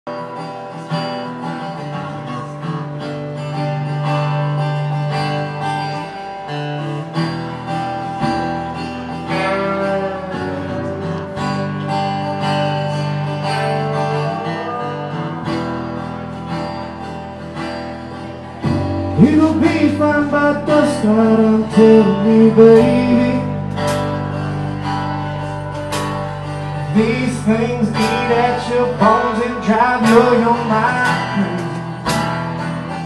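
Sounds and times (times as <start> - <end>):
acoustic guitar strumming chords: 0.1 - 33.0.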